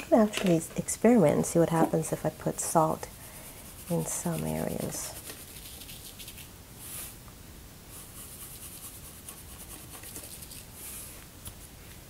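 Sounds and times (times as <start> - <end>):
salt shaker shaking: 3.6 - 7.1, 7.9 - 11.0
salt grains pattering on paper: 3.7 - 6.5.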